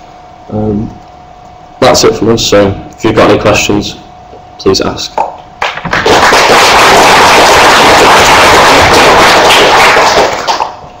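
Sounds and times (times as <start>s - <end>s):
audience applauding: 5.6s - 10.8s.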